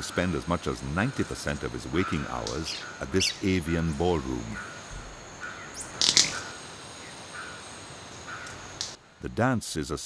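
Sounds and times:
faint chirps: 0.0 - 10.0
insects humming: 0.0 - 10.0
bird wing snaps: 5.9 - 6.5, 8.4 - 9.0.

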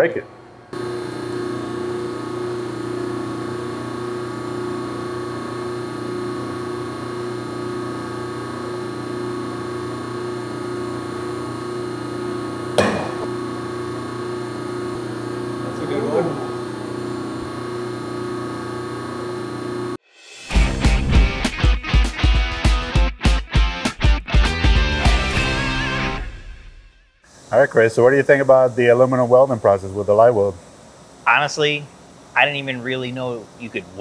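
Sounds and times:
testing machine humming: 0.4 - 20.0.

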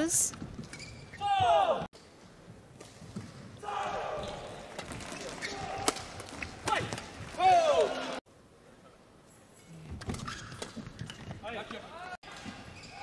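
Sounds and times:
shoes squeaking on court floor: 0.0 - 1.5, 4.2 - 7.4, 9.9 - 13.0.

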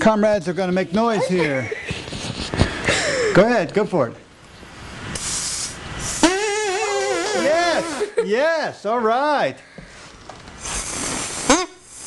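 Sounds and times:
breath blowing through straw: 5.2 - 8.1, 10.0 - 12.0
straw duck call honking: 6.1 - 8.1.

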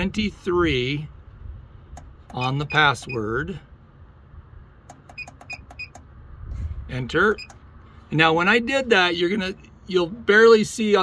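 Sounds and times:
push button clicks: 4.9 - 6.0.

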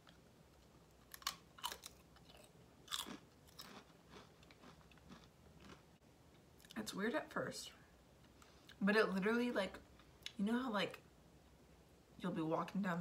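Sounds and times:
potato chip crunching: 0.9 - 5.8.

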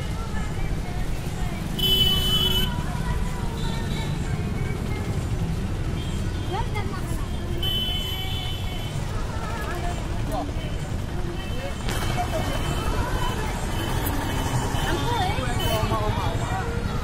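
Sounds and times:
faint music: 0.0 - 17.0
traffic rumble: 0.0 - 17.0.

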